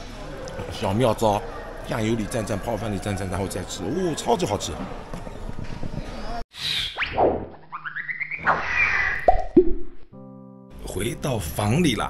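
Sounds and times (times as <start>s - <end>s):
sliding whistles: 6.6s - 9.4s.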